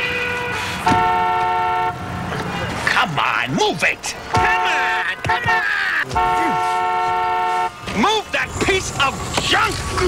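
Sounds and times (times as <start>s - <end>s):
car horn honking: 0.0s - 2.1s, 4.3s - 7.9s.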